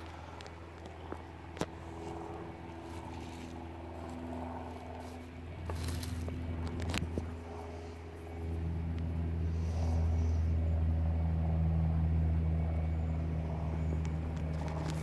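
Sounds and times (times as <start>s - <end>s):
engine droning hum: 0.0s - 15.0s.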